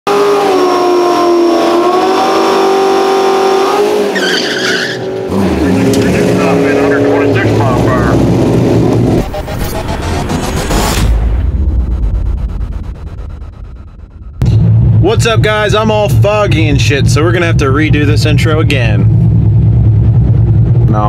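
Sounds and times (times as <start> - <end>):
car engine revving: 0.1 - 21.0
tyre squeal: 3.5 - 5.2
whoosh: 8.3 - 17.5.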